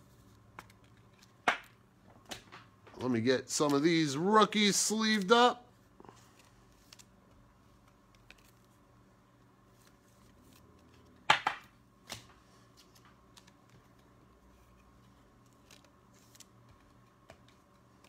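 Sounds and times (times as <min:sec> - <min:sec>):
cards sliding into plastic sleeves: 0:03.0 - 0:08.8.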